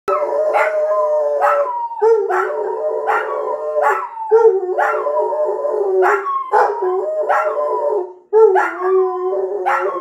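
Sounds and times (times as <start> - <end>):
dogs howling together: 0.1 - 10.0.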